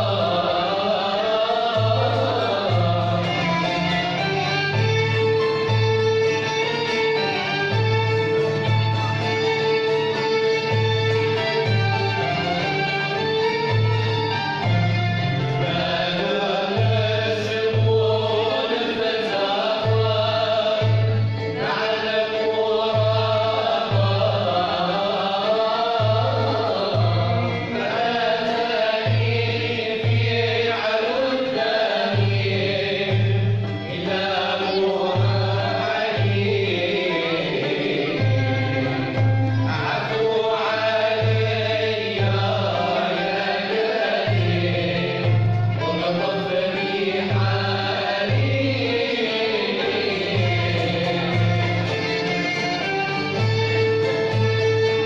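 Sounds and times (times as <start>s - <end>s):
string ensemble playing: 0.0s - 55.0s
voices singing together: 0.0s - 55.0s.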